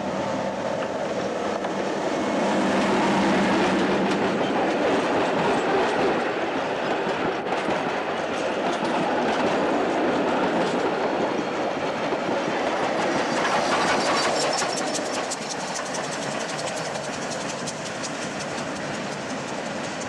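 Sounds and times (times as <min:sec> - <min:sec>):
locomotive engine hum: 0:00.0 - 0:06.8, 0:09.8 - 0:20.0
train wheels clattering on rail: 0:00.7 - 0:20.0.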